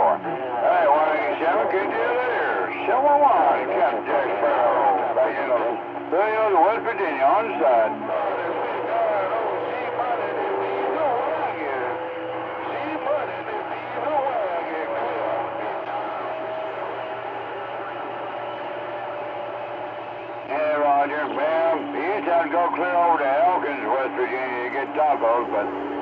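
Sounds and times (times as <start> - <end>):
clear radio voice: 0.0 - 15.5, 20.5 - 25.8
radio static hiss: 0.0 - 16.4, 20.4 - 26.0
garbled radio voices: 0.0 - 19.6, 20.4 - 26.0.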